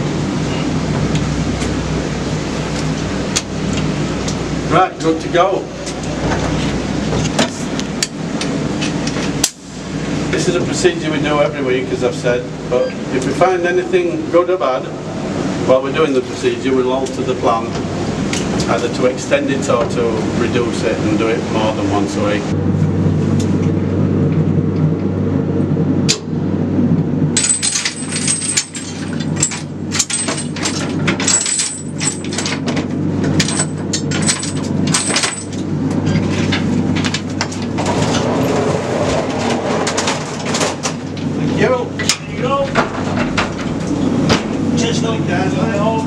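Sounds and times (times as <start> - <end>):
mine shaft cage rumble: 0.0 - 46.0
metallic clinks and rattles of chains: 27.4 - 32.6, 33.4 - 35.6
mine cage rumbling in shaft: 37.6 - 41.1.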